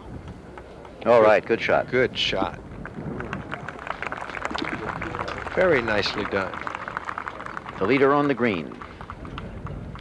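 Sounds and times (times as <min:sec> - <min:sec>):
crowd clapping: 0:02.7 - 0:10.0.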